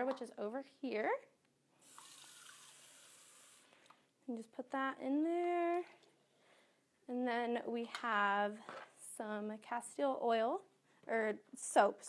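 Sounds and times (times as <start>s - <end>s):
water running into plastic cup: 1.8s - 3.7s.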